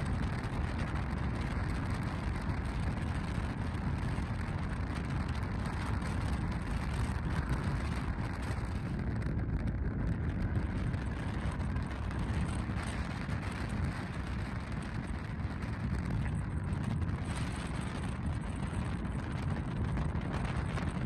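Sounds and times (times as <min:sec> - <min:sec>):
car road noise rumble: 0:00.0 - 0:21.0.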